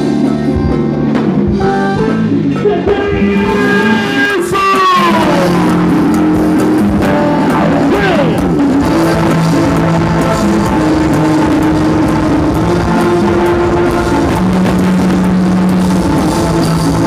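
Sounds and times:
drum kit: 0:00.0 - 0:17.0
electric guitar: 0:00.0 - 0:17.0
live band playing loud music: 0:00.0 - 0:17.0.

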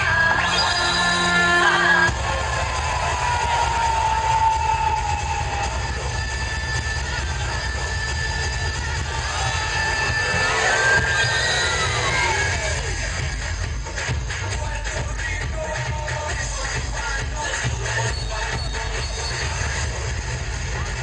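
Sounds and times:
rising and falling whistle: 0:00.0 - 0:02.2, 0:03.6 - 0:12.8.

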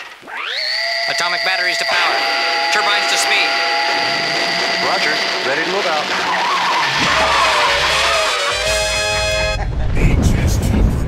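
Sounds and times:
steady horn-like tone: 0:00.6 - 0:09.6
deep low rumble: 0:09.5 - 0:11.0.

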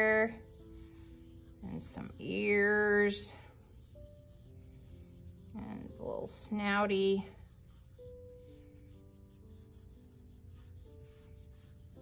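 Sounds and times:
pencil scratching on paper: 0:00.0 - 0:06.4, 0:07.0 - 0:12.0
faint slow background music: 0:00.0 - 0:12.0.

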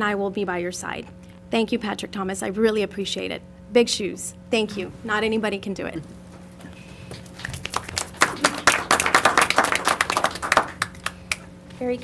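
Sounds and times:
people clapping: 0:07.2 - 0:11.5.

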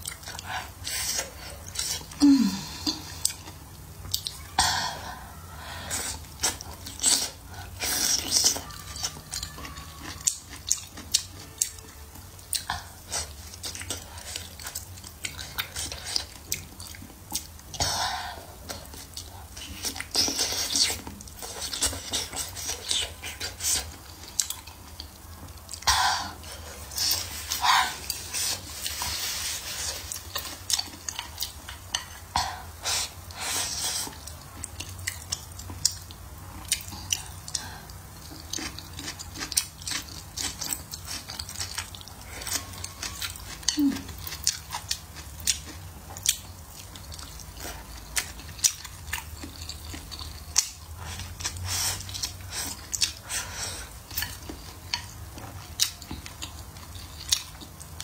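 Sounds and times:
chewing with wet mouth smacks: 0:00.0 - 0:04.6, 0:06.1 - 0:58.0.

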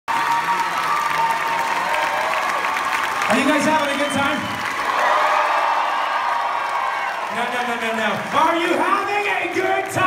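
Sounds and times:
audience applauding and cheering: 0:00.1 - 0:10.0.

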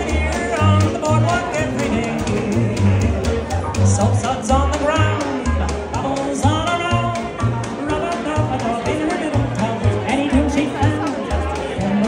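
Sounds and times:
jazz band playing swing: 0:00.0 - 0:12.0
upright bass walking notes: 0:00.0 - 0:12.0.

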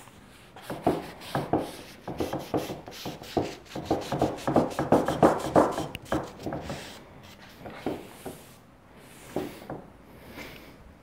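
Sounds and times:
paper towel rubbing on wood: 0:00.4 - 0:08.5.

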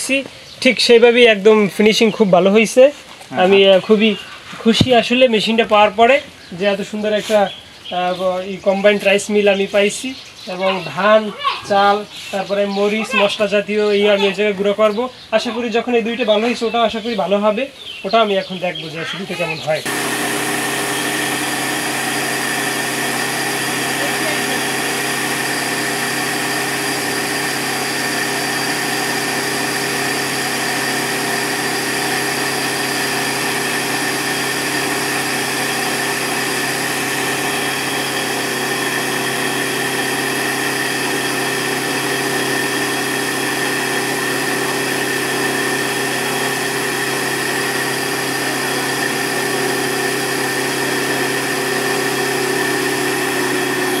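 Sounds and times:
high machine whine: 0:19.8 - 0:54.0
rice mill machine hum: 0:19.8 - 0:54.0.

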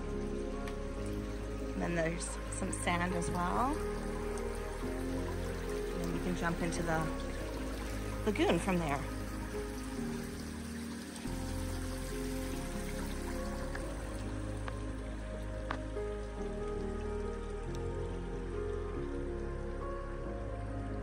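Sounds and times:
soft sustained music chords: 0:00.0 - 0:21.0.

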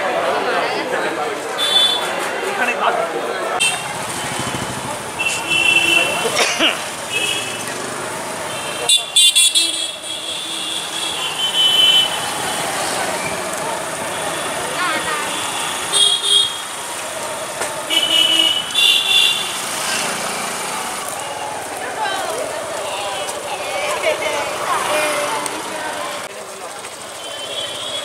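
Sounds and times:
people's voices: 0:00.0 - 0:10.0, 0:10.6 - 0:28.0
traffic noise: 0:00.0 - 0:28.0
vehicle horns beeping: 0:03.6 - 0:07.8, 0:08.4 - 0:12.7, 0:14.0 - 0:16.8, 0:17.9 - 0:19.6, 0:27.2 - 0:28.0.

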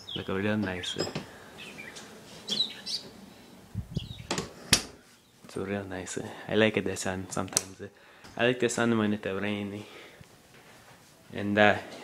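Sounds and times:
small birds chirping: 0:00.0 - 0:05.6.

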